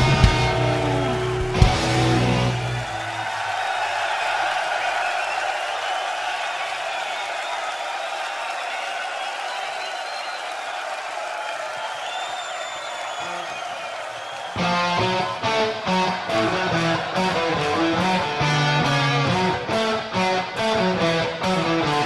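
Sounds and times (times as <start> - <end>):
crowd clapping: 0.0 - 22.0
crowd shouting: 0.0 - 22.0
high whistles: 2.8 - 15.7.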